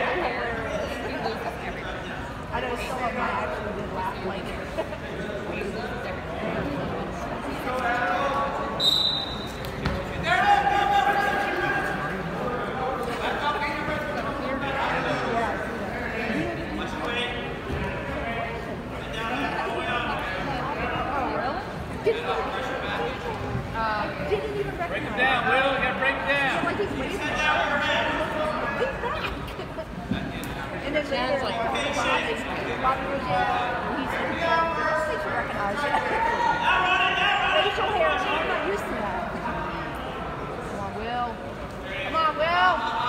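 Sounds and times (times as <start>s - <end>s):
voices shouting in echoing gym: 7.2s - 30.0s, 30.8s - 43.0s.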